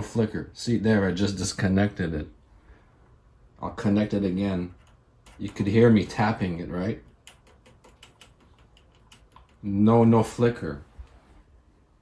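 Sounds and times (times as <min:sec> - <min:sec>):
clip lead tapping metal terminal: 0:07.0 - 0:09.6.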